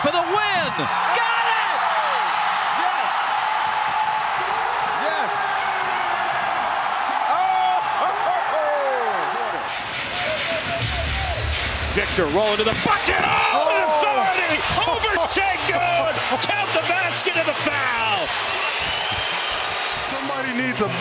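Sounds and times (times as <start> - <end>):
crowd cheering and shouting: 0.0 - 21.0.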